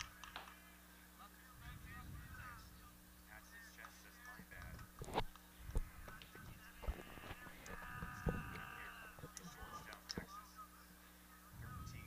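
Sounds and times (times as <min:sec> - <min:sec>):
distant voices: 0:00.0 - 0:10.3.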